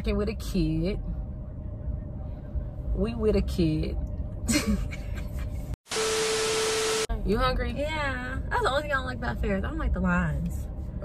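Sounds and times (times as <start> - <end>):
loud static hiss: 5.9 - 7.1
steady beep tone: 5.9 - 7.1.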